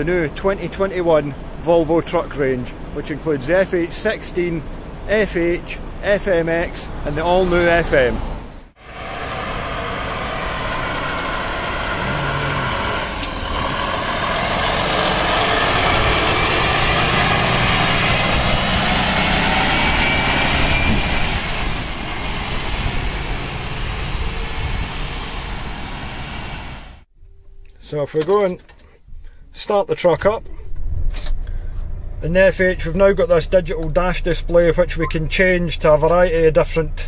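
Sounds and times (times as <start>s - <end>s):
diesel truck driving past: 4.6s - 27.1s.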